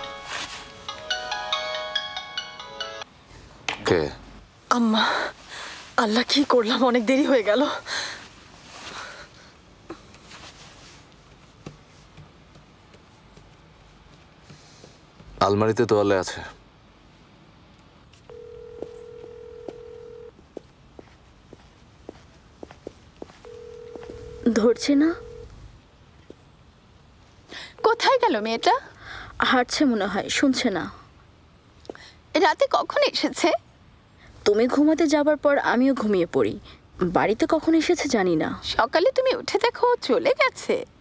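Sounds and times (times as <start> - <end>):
phone ringtone melody: 0.0 - 3.0, 18.3 - 20.3, 23.5 - 24.5
telephone dial tone: 18.3 - 20.3, 23.4 - 25.5.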